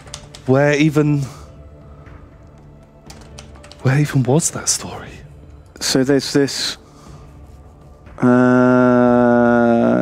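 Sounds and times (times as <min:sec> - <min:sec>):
computer keyboard keystrokes: 0:00.0 - 0:00.5, 0:03.1 - 0:03.9
faint background music: 0:00.0 - 0:10.0.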